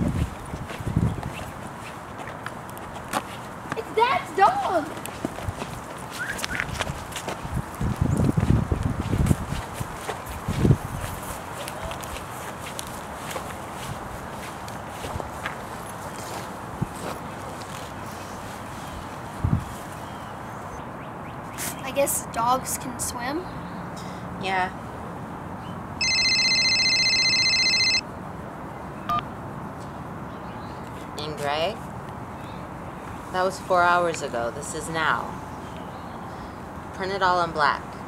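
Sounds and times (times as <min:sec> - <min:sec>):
footsteps on grass: 0:00.0 - 0:03.6, 0:04.8 - 0:20.2
outdoor background noise: 0:00.0 - 0:38.0
phone ringtone trilling: 0:26.0 - 0:28.0.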